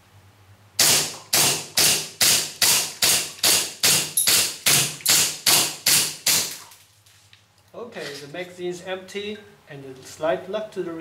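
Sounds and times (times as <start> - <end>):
airsoft pistol shots: 0.8 - 6.6.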